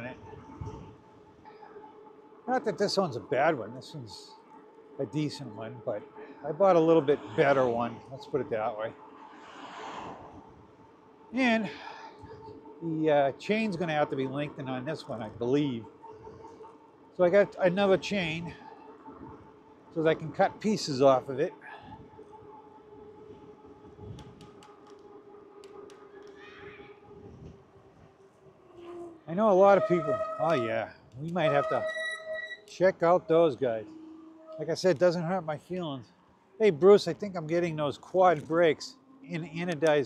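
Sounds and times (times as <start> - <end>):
wind on microphone: 0.0 - 1.4, 9.9 - 12.8, 21.6 - 22.6, 23.2 - 24.9, 26.5 - 28.2
wind rumble on microphone: 0.0 - 1.5, 9.9 - 16.6, 17.5 - 20.8, 21.6 - 26.0, 26.6 - 31.2
car passing: 0.0 - 31.1, 32.7 - 40.0
electric bike motor whining: 4.4 - 35.3.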